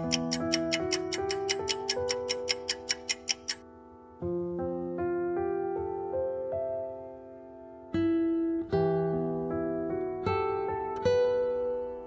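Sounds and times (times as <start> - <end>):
clock-like ticking: 0.0 - 3.6.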